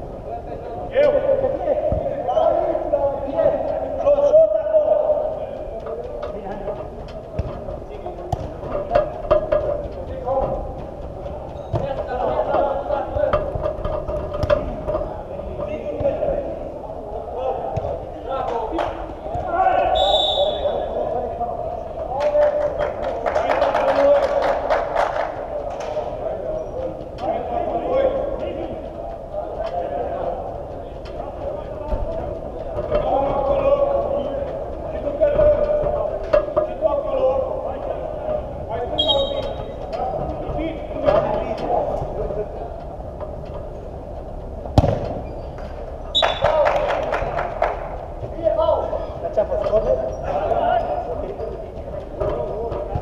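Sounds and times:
players calling: 0.5 - 25.5, 26.1 - 53.0
football kick thud: 44.8 - 45.2.

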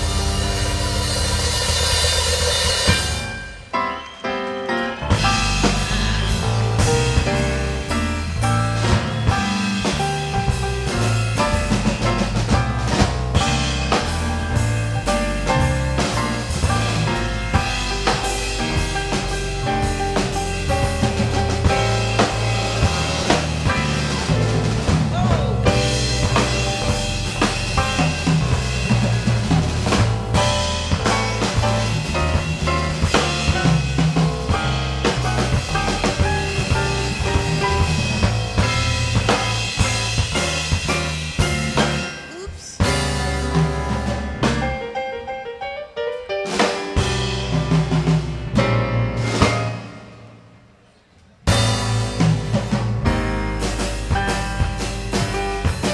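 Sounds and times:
walking electric bass: 0.0 - 3.7, 5.0 - 42.1, 51.5 - 55.9
drum kit with rimshots: 0.0 - 55.9
grand piano chords: 0.0 - 55.9.

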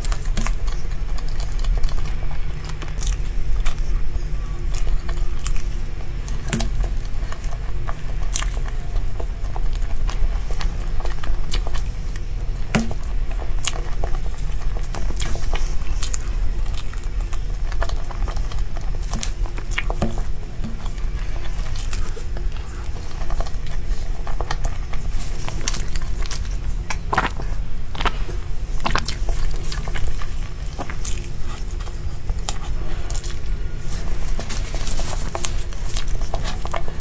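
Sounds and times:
chewing clicks: 0.0 - 37.0
steady low hum: 0.0 - 37.0.

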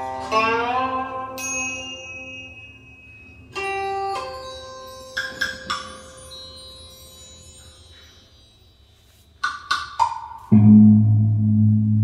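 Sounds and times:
faint high chime note: 1.4 - 5.1
low hum: 10.6 - 12.0.

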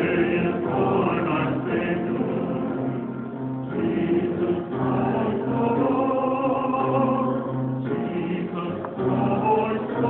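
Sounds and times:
choir singing long notes: 0.0 - 10.0.

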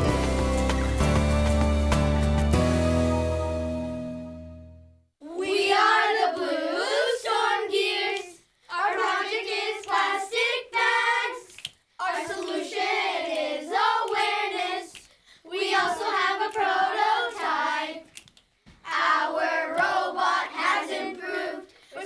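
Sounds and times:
children singing together: 5.2 - 14.9, 15.5 - 18.1, 18.9 - 22.0.

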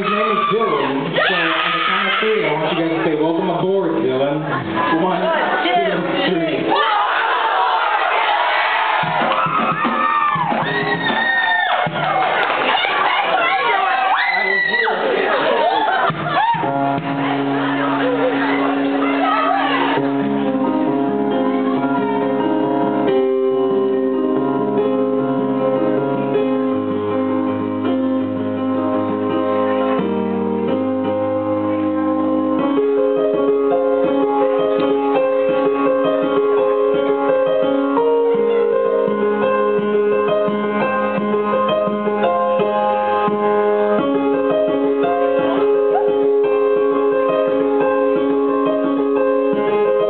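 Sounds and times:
audience cheering and whooping: 0.0 - 2.5, 6.7 - 20.5, 45.5 - 47.0
electric keyboard chords: 14.8 - 50.0.

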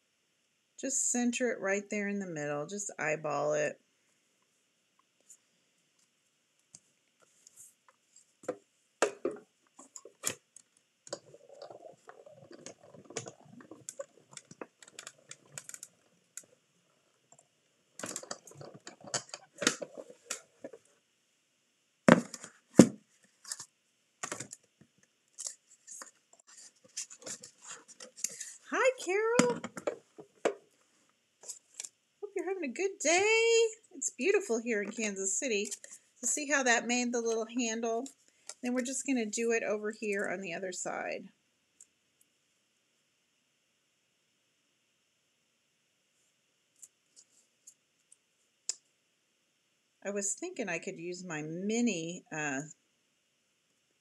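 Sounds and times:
person speaking: 27.0 - 30.0, 32.2 - 41.2.

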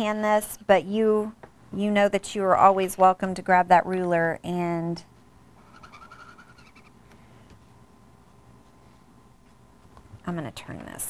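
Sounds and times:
marker squeaking on paper: 5.6 - 7.0.

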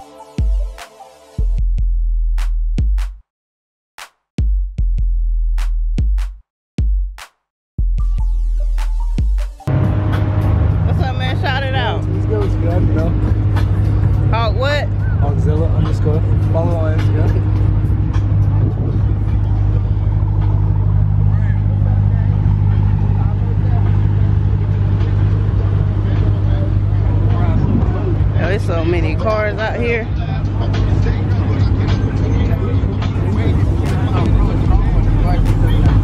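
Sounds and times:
car engine idling: 9.7 - 36.0
voices talking: 10.8 - 36.0.

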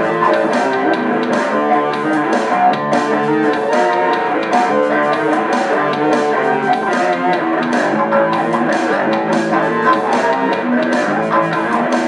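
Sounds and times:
electric guitar with band: 0.0 - 12.0
steady beat of sharp hits: 0.0 - 12.0.

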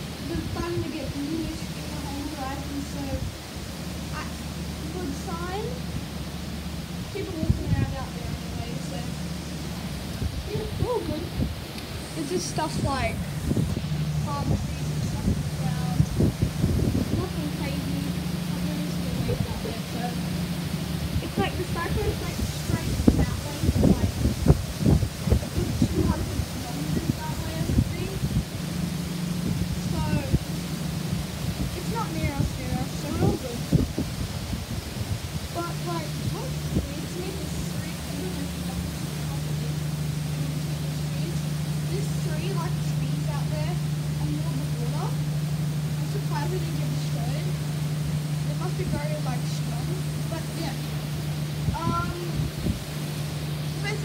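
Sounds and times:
faint voices talking: 0.0 - 34.0, 35.4 - 54.0
low steady hum: 0.0 - 54.0
wind buffeting microphone: 0.0 - 54.0.

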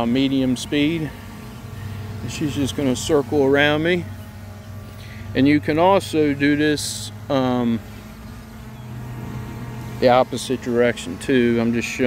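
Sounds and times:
drone propellers buzzing: 0.0 - 12.0.

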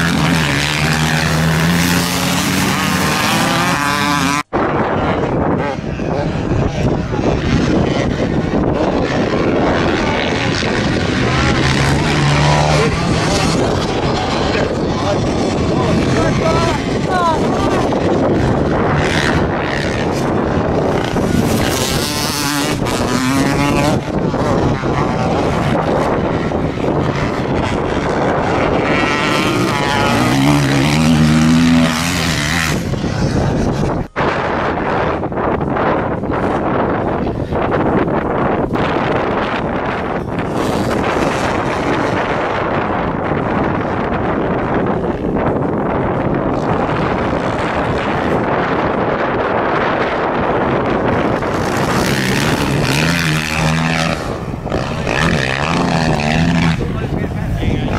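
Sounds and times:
dirt bike engines revving: 0.0 - 57.9
wind noise on microphone: 0.0 - 57.9.

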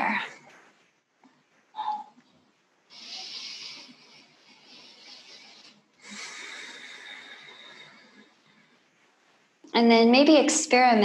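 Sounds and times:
woman breathing deeply through nose: 2.9 - 8.8.

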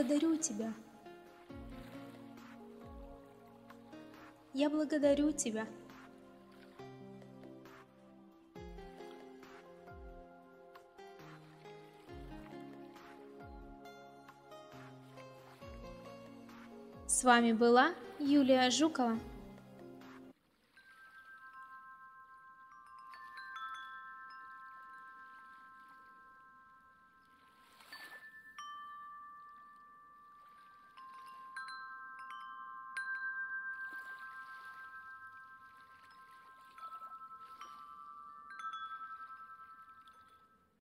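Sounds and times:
faint chimes ringing: 20.7 - 40.8.

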